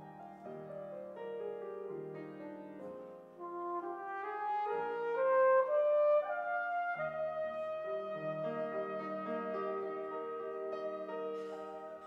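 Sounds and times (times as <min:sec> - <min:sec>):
piano accompaniment: 0:00.0 - 0:12.0
brass instrument melody: 0:03.3 - 0:12.0.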